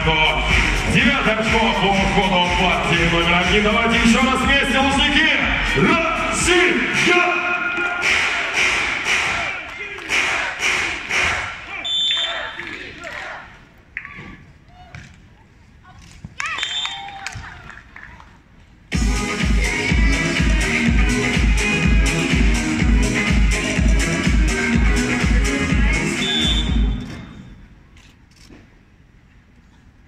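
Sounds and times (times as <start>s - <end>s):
voice over loudspeakers: 0.0s - 8.1s
music over loudspeakers: 0.0s - 11.5s, 18.9s - 27.2s
loud dance music: 0.0s - 11.6s, 18.9s - 27.1s
high whistle: 11.8s - 12.6s, 16.6s - 17.0s, 26.1s - 27.7s.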